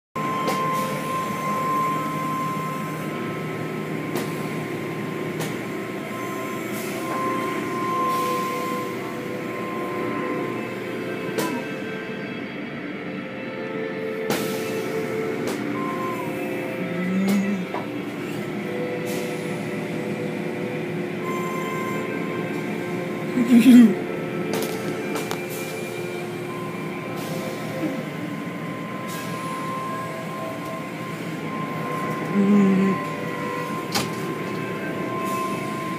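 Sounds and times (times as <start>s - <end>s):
car wash machinery hum and whine: 0.2s - 35.9s.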